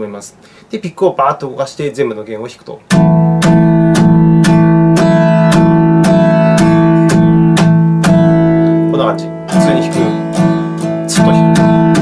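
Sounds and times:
acoustic guitar strumming: 0:02.8 - 0:12.0.

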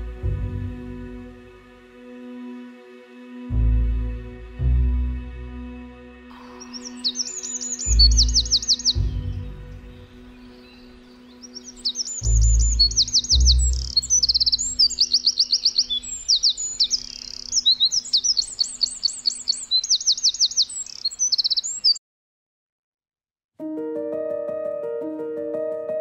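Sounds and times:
wren singing: 0:06.3 - 0:22.0.

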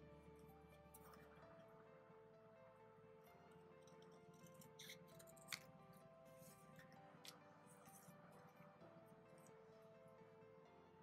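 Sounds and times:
faint background music: 0:00.0 - 0:11.0
scissors cutting paper: 0:04.4 - 0:05.7.

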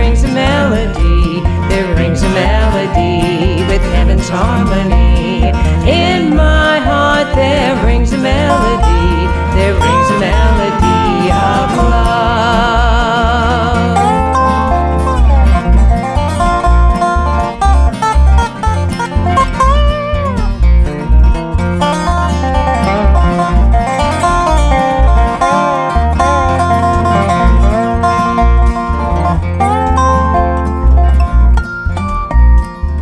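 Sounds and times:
acoustic guitar: 0:00.0 - 0:33.0
pulsing bass: 0:00.0 - 0:33.0
sliding lead line: 0:22.5 - 0:31.6.

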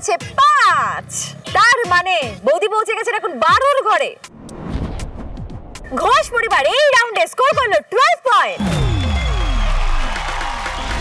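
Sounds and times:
whoosh with falling tones: 0:04.3 - 0:06.8.

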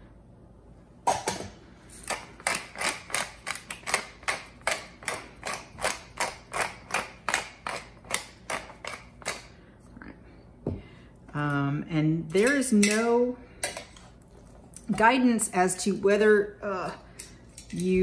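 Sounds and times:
pepper mill grinding: 0:01.9 - 0:09.5.

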